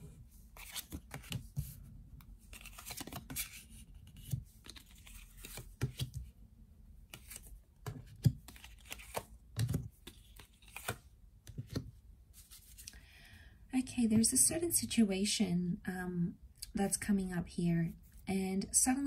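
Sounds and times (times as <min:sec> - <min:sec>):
cards sliding on cards: 0:02.5 - 0:06.3, 0:07.1 - 0:13.0.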